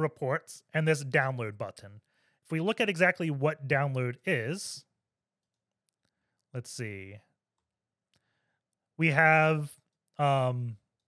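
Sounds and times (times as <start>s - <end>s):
person speaking: 0.0s - 4.8s, 6.5s - 7.2s, 9.0s - 10.9s.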